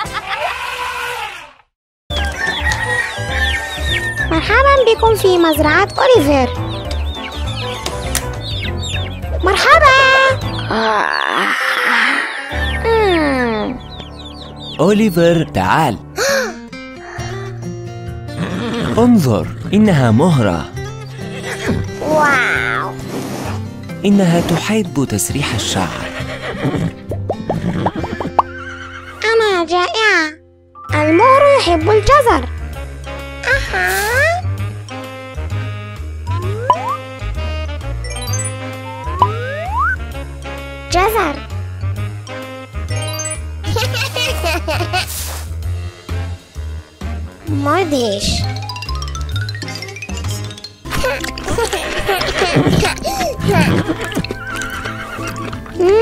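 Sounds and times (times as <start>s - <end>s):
upbeat background music: 2.1s - 56.0s
horse whinnying: 18.3s - 19.1s, 25.9s - 29.2s, 52.2s - 55.8s.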